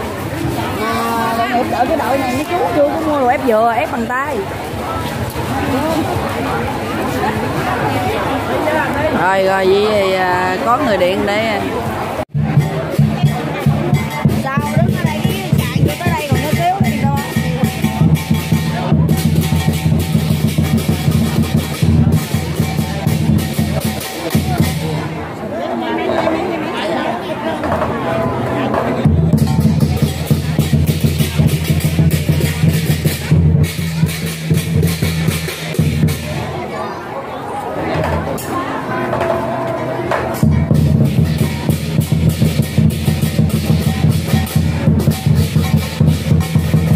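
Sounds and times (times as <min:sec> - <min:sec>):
crowd chatter: 0:00.0 - 0:46.9
drum and cymbals fast roll: 0:12.3 - 0:25.1, 0:29.0 - 0:36.4, 0:40.3 - 0:46.9.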